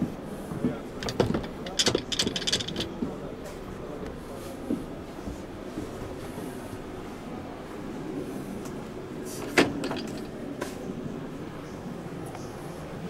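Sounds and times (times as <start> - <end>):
steady low background noise: 0.0 - 13.0.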